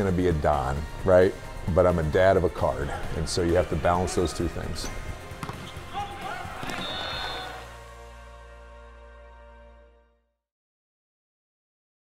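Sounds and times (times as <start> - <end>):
soft background music: 0.0 - 10.3
ball thudding on court: 5.4 - 5.8, 6.6 - 7.0
players calling out: 5.5 - 7.8
volleyball spike: 6.6 - 7.3.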